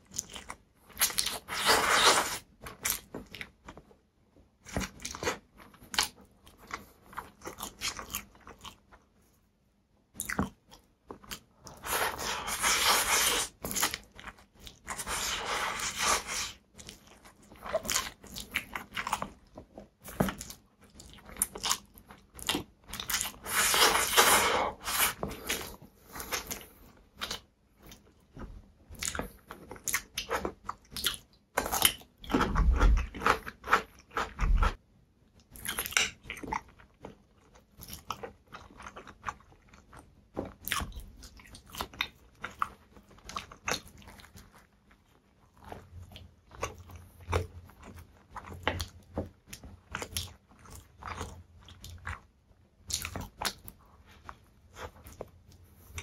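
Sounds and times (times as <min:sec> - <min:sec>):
man chewing food: 0:00.0 - 0:03.9, 0:04.6 - 0:09.4, 0:10.2 - 0:56.0.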